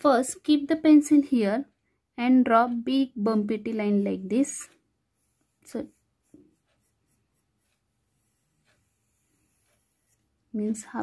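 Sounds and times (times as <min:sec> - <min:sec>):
pencil scratching on paper: 0:03.5 - 0:11.0.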